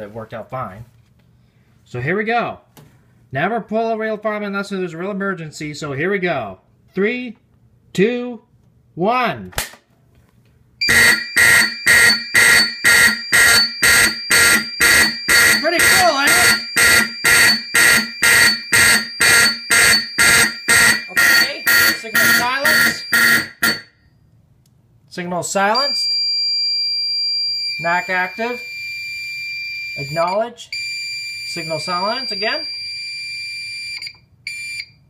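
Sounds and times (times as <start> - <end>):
fire alarm horn pulsing: 10.8 - 24.0, 25.8 - 34.9.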